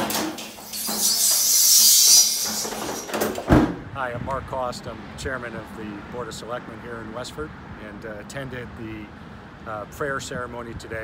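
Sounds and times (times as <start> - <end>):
hiss of sliding down a pole: 0.6 - 3.2.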